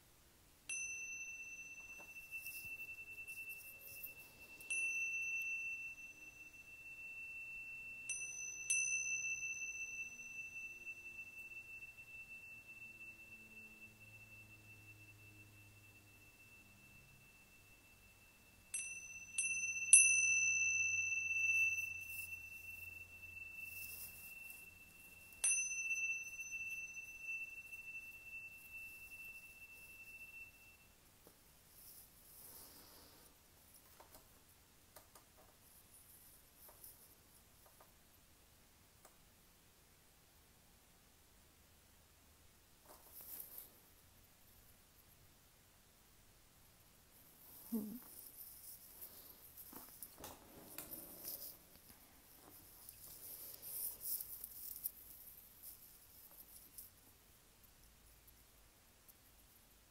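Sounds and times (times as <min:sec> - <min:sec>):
tingsha cymbals ringing: 0:00.7 - 0:31.0.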